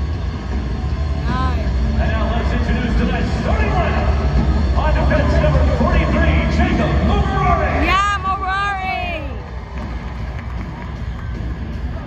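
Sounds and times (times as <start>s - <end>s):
arena music: 0.0s - 12.0s
crowd rumble: 0.0s - 12.0s.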